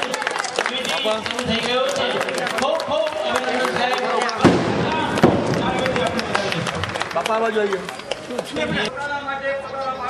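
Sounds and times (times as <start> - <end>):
crowd clapping: 0.0 - 8.9
crowd voices: 0.0 - 10.0
sharp bangs: 4.3 - 6.3.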